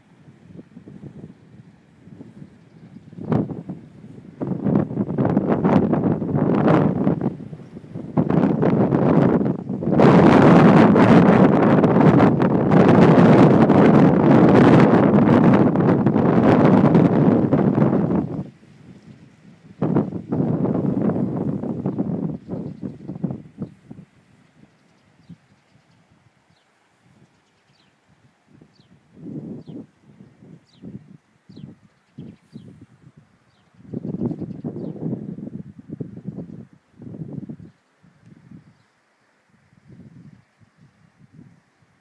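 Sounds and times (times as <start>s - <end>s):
wind buffeting microphone: 0.0s - 38.8s, 39.5s - 42.0s.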